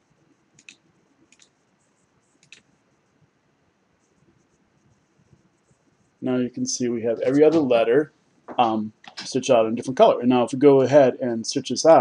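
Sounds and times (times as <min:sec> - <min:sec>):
computer mouse clicking: 0:00.6 - 0:01.6, 0:02.4 - 0:02.7.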